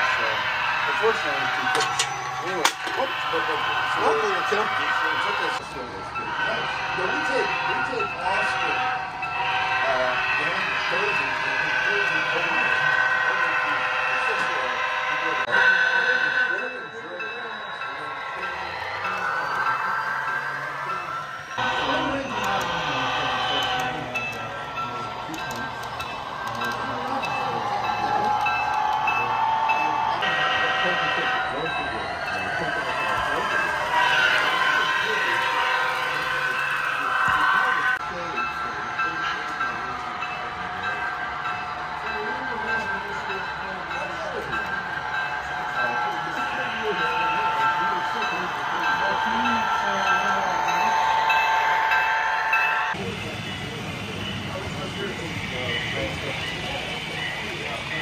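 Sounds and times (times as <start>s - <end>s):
model train rumble: 0.0s - 58.0s
model train tones: 0.0s - 58.0s.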